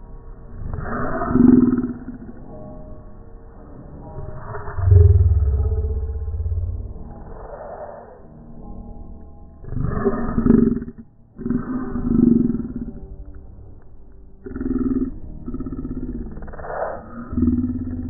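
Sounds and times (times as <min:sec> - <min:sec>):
low gravelly roar-like vocal sounds: 0:00.5 - 0:02.6, 0:04.0 - 0:07.8, 0:09.6 - 0:13.2, 0:14.4 - 0:18.0.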